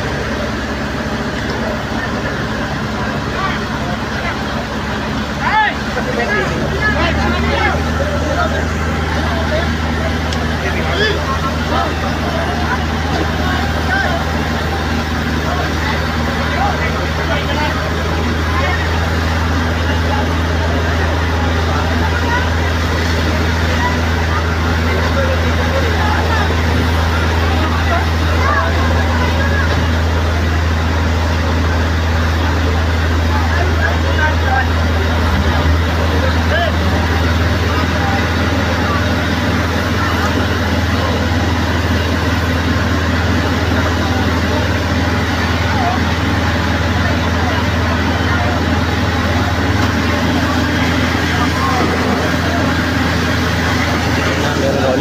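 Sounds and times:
crowd chatter: 0.0 - 55.0
fire truck engine droning: 0.0 - 55.0.

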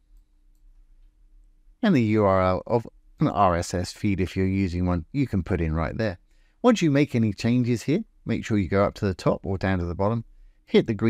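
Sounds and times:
faint steady hum: 0.0 - 11.0
man speaking: 1.8 - 11.0.

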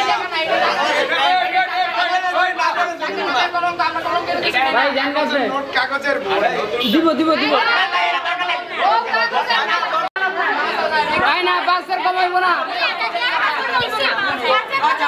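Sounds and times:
crowd talking: 0.0 - 15.0.

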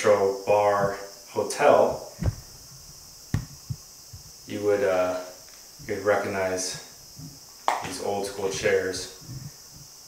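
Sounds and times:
faint steady hiss: 0.0 - 10.0
soft low thumps: 1.8 - 4.6.

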